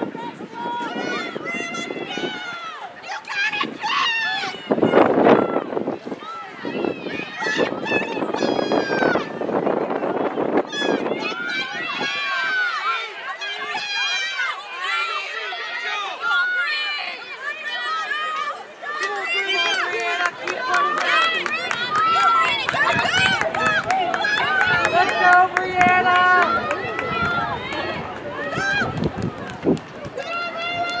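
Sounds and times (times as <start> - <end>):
spectators yelling and cheering: 0.0 - 31.0.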